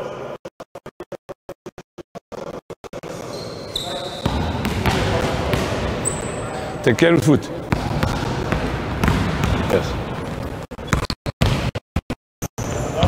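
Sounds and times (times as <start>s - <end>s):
sneakers squeaking on court: 3.1s - 6.8s, 7.6s - 11.7s
basketballs dribbling on wooden floor: 4.2s - 6.6s, 7.6s - 11.7s.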